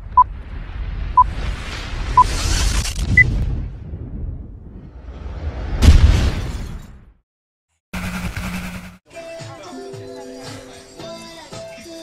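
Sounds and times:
music with held notes: 9.1 - 12.0.

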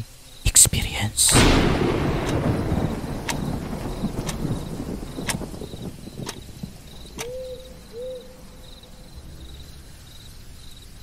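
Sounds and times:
crickets chirping: 0.0 - 11.0
owl hooting: 7.2 - 8.5.

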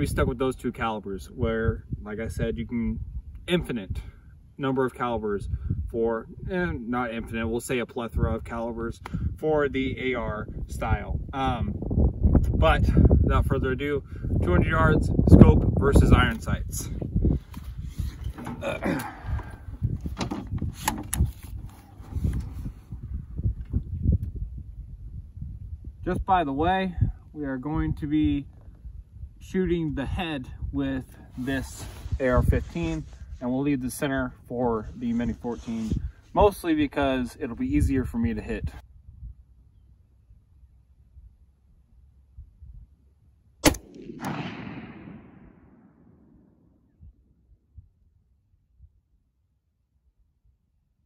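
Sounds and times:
wind rumble on microphone: 0.0 - 43.0, 43.6 - 49.2
rifle handling knocks and clicks: 20.1 - 21.4
rifle shot: 43.6 - 46.7
crack and rumble: 43.6 - 47.0.

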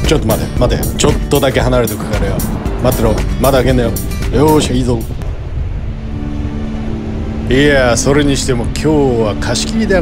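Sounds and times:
surf washing: 0.0 - 10.0
wind buffeting microphone: 0.0 - 10.0.

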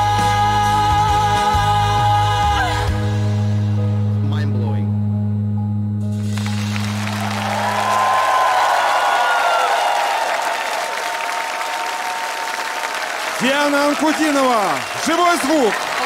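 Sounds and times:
low sustained musical note: 3.7 - 8.4
studio audience applauding and cheering: 6.2 - 16.0.

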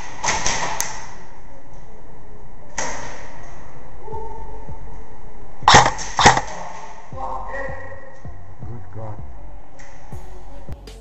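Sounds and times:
airsoft gunshots: 5.7 - 6.5.

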